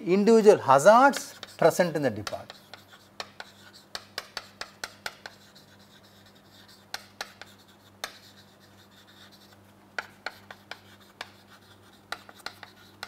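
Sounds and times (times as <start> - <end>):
chalk tapping and scraping: 0.9 - 13.0.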